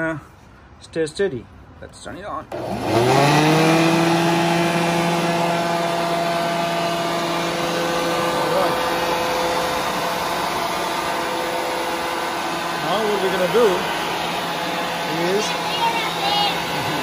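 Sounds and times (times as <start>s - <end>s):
electric leaf blower running: 2.5s - 17.0s.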